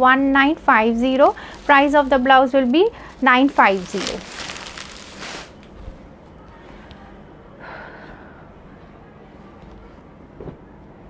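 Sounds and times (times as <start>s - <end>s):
faint handling sounds: 0.7s - 6.7s.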